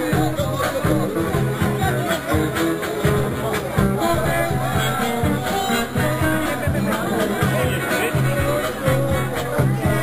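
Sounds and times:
crowd voices: 0:00.0 - 0:10.0
processional band music: 0:00.0 - 0:10.0.

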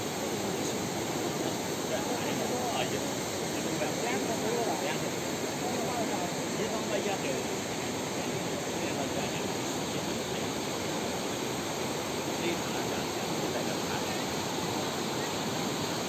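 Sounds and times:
floodwater rushing: 0:00.0 - 0:16.0.

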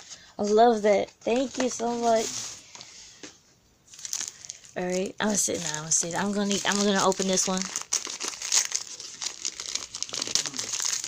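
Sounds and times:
wrapping paper crinkling: 0:00.7 - 0:02.7, 0:03.9 - 0:11.0.

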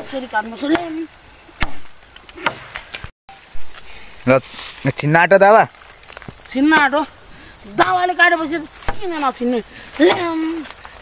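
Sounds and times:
knife chopping into wood: 0:01.6 - 0:03.0, 0:08.8 - 0:09.2, 0:10.0 - 0:10.5.

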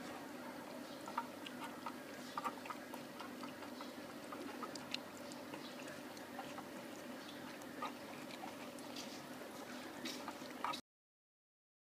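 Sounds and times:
puppies chewing and lapping: 0:00.0 - 0:10.8
steady low hum: 0:00.0 - 0:10.8.

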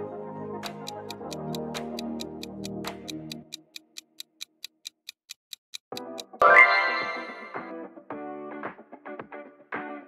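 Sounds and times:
background music: 0:00.0 - 0:03.6, 0:05.9 - 0:10.0
countdown timer ticking: 0:00.6 - 0:07.7.

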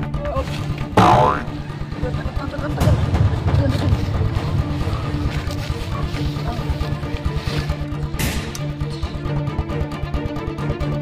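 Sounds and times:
background music with low beat: 0:00.0 - 0:11.0
cartoon boing sound effect: 0:01.0 - 0:01.5.

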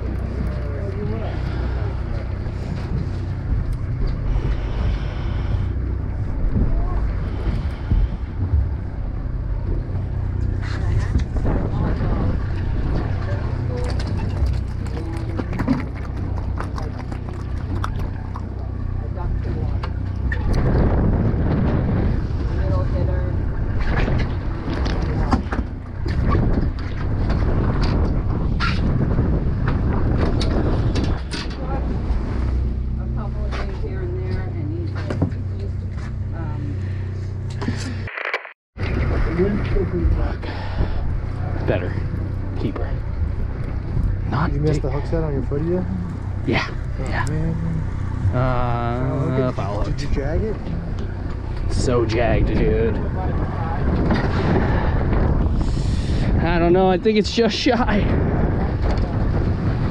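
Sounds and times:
wind buffeting microphone: 0:00.0 - 0:37.5, 0:38.8 - 0:59.9
boat engine humming: 0:00.0 - 0:38.1, 0:38.8 - 0:59.9.

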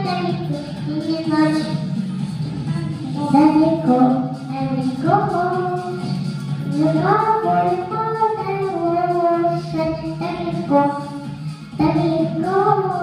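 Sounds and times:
girl singing into a microphone: 0:00.0 - 0:01.8, 0:02.7 - 0:06.1, 0:06.7 - 0:11.2, 0:11.8 - 0:13.0.

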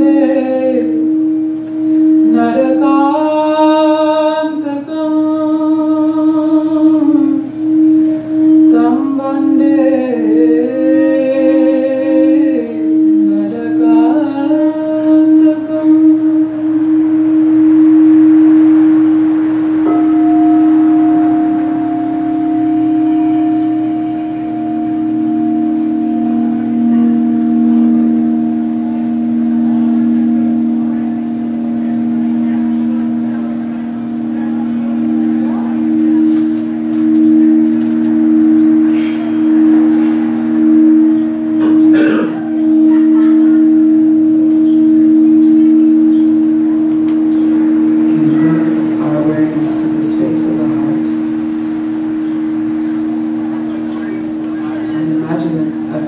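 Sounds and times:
singing bowls ringing: 0:00.0 - 0:56.0.

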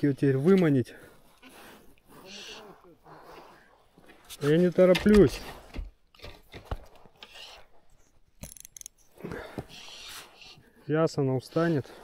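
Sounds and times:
fishing reel clicks and rustles: 0:08.4 - 0:09.1.

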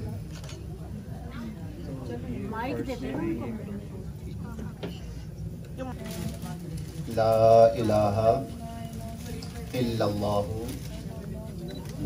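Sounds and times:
faint room murmur: 0:00.0 - 0:12.0.

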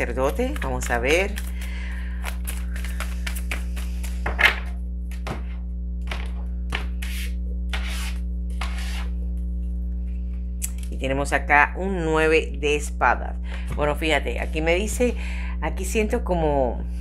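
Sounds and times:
cards swishing: 0:02.3 - 0:04.2.

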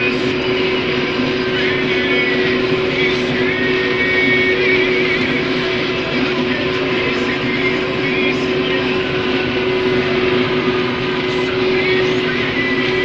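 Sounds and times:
combine harvester engine drone: 0:00.0 - 0:13.0.

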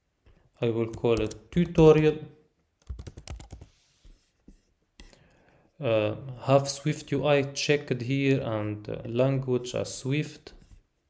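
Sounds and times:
computer keyboard typing: 0:00.8 - 0:02.1, 0:02.8 - 0:03.7.

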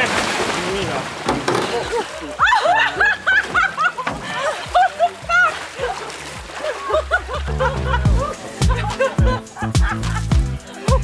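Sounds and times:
water splashing: 0:00.0 - 0:10.2
background music with a beat: 0:07.4 - 0:11.0.

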